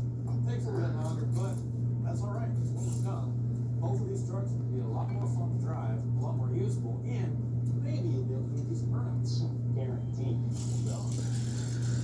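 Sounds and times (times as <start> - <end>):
steady low hum: 0.0 - 12.0
muffled television talk: 0.2 - 12.0
tortoise crunching greens: 10.5 - 12.0.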